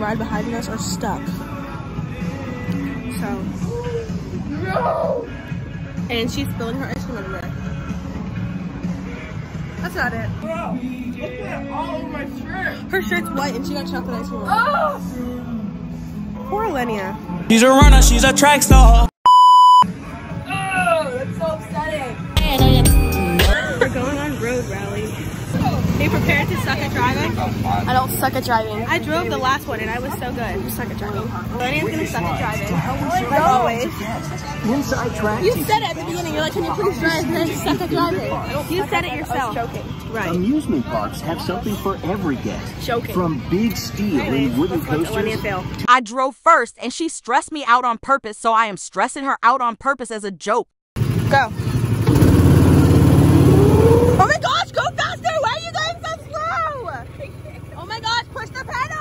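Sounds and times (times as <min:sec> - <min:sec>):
young voices talking: 0:00.0 - 0:08.0, 0:08.9 - 0:15.6, 0:20.3 - 0:45.9, 0:53.8 - 0:59.0
ride car engine running: 0:23.9 - 0:32.4, 0:51.0 - 0:59.0.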